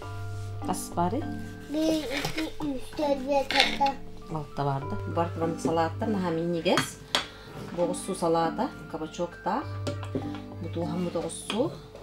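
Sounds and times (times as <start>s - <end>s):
woman speaking: 4.3s - 7.0s, 7.8s - 9.7s, 10.6s - 11.8s.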